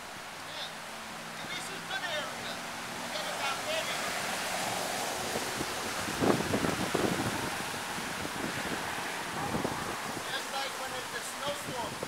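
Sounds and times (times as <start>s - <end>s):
wind rushing over microphone: 2.8s - 12.0s.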